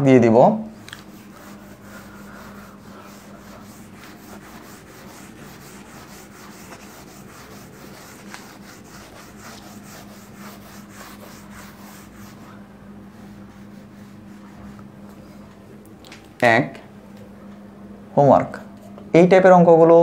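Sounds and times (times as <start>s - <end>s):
low steady hum: 0.0s - 20.0s
pen scratching on paper: 0.9s - 12.6s.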